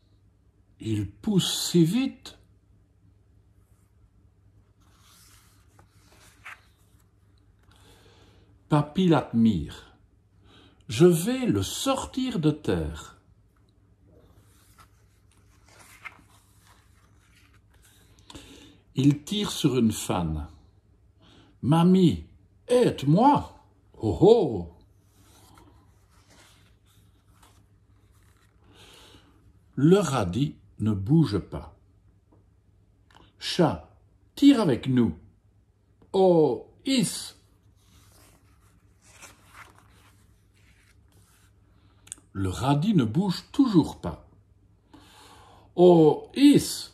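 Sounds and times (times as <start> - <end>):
paper page turning: 4.8 - 7.2, 14.3 - 18.1, 25.2 - 28.6, 37.7 - 41.6.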